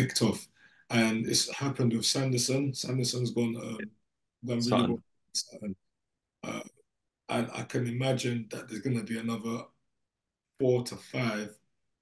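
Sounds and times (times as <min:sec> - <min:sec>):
man speaking over video call: 0:00.0 - 0:05.8, 0:06.4 - 0:06.7, 0:07.3 - 0:09.8, 0:10.6 - 0:11.6.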